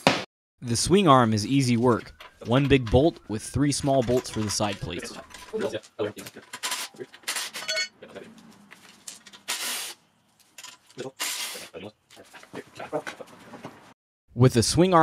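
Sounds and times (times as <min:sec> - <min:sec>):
wrenches clinking on metal: 0:01.7 - 0:07.9, 0:10.5 - 0:11.1.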